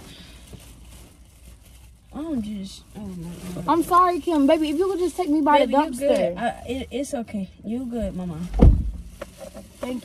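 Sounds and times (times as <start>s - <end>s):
plastic bag rustling and crinkling: 0.0s - 6.5s, 8.0s - 10.0s.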